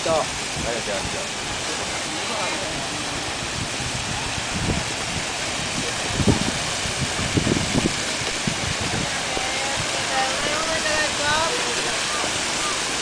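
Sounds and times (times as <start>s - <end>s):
fountain water splashing: 0.0s - 13.0s.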